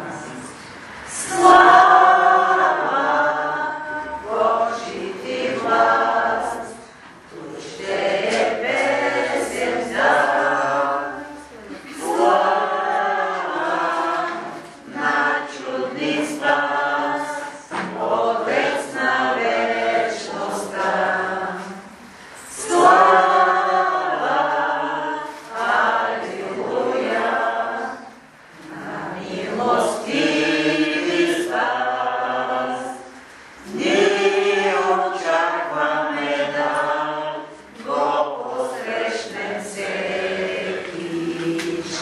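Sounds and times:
congregation singing a hymn: 0:00.0 - 0:42.0.

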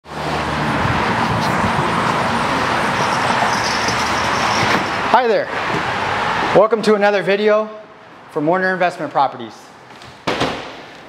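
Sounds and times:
street traffic: 0:00.0 - 0:08.4.

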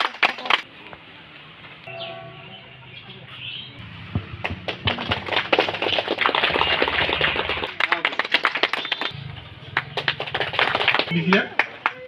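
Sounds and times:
small crowd clapping: 0:00.0 - 0:00.7, 0:04.2 - 0:12.0.

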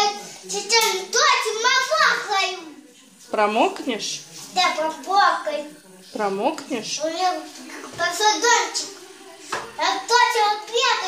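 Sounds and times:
small child speaking: 0:00.0 - 0:02.8, 0:09.8 - 0:11.0.

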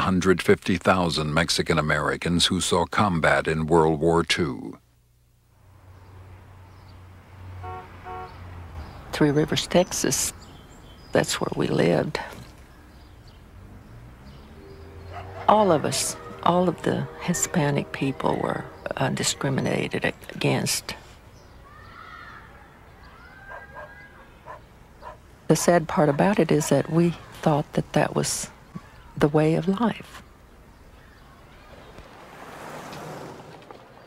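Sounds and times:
low hum of street noise: 0:00.0 - 0:34.0
car horn toot: 0:07.6 - 0:08.4
animal whining calls: 0:14.8 - 0:17.9, 0:21.7 - 0:25.2
animal yipping: 0:23.2 - 0:25.2.

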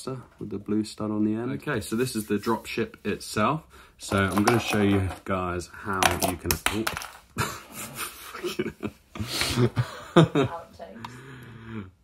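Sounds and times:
man laughing softly: 0:07.4 - 0:10.6.

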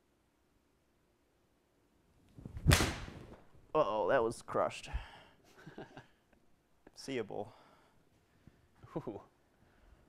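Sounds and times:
golf club swish: 0:02.4 - 0:03.4.

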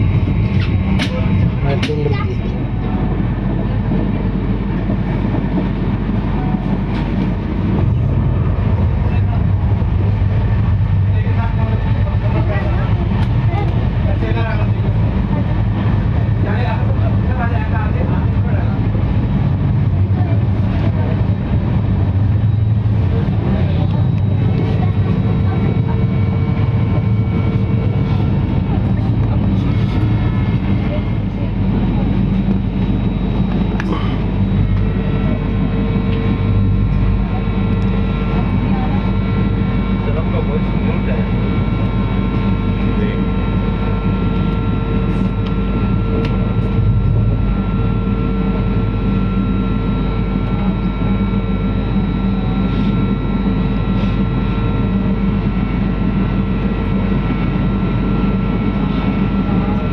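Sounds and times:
faint voices murmuring: 0:00.0 - 0:59.9
train rumbling: 0:00.0 - 0:59.9.

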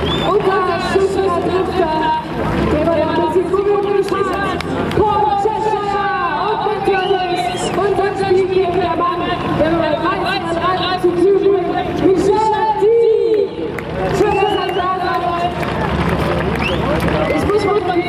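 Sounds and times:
crowd babble: 0:00.0 - 0:18.0.

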